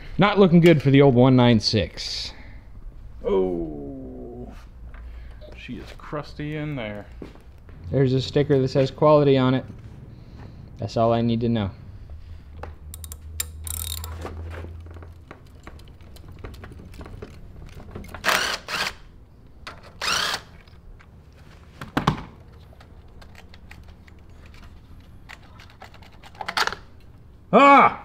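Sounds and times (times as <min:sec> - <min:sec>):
tools and parts clicking: 0:12.8 - 0:19.0, 0:22.5 - 0:27.3
cordless drill running: 0:18.2 - 0:19.0, 0:20.0 - 0:20.6.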